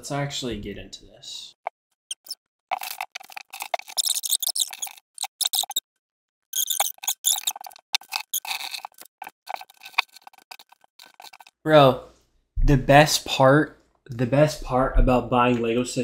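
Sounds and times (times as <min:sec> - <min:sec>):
plastic bricks clicking and rattling: 0:06.6 - 0:11.5.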